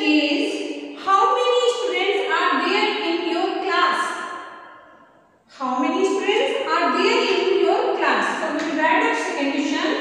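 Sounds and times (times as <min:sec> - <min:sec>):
woman speaking: 0:00.0 - 0:04.3, 0:05.5 - 0:10.0.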